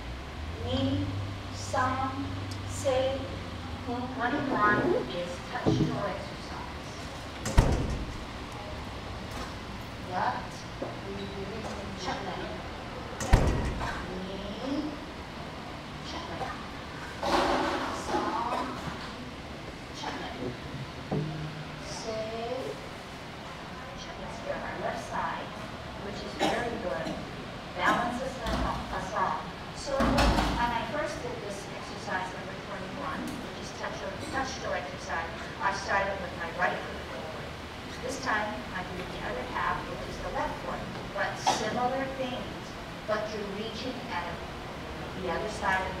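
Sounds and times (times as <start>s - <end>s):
woman speaking: 0.5s - 7.1s, 10.0s - 15.1s, 16.0s - 16.7s, 17.8s - 19.0s, 19.9s - 20.5s, 21.8s - 22.8s, 23.9s - 27.2s, 27.8s - 44.5s, 45.2s - 46.0s
sharp thump in a large hall: 7.5s - 8.3s.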